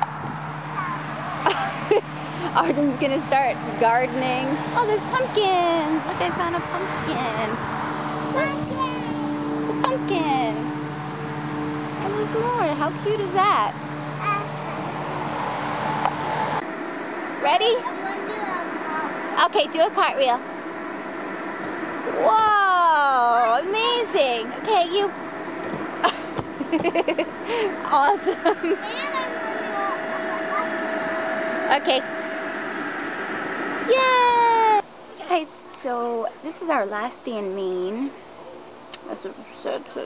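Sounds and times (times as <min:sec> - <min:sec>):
low mechanical hum: 0:00.0 - 0:40.0
rushing background noise: 0:00.0 - 0:40.0
high-pitched cheer: 0:33.9 - 0:34.8.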